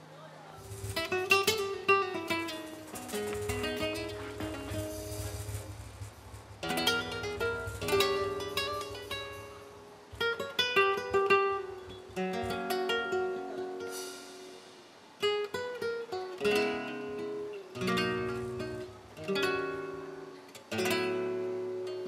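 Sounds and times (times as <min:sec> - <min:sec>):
flamenco guitar playing: 0:00.6 - 0:22.0.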